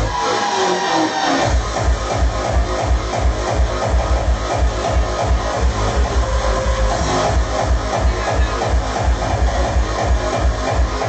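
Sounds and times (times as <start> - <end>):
drum and bass music on sound system: 0.0 - 11.0.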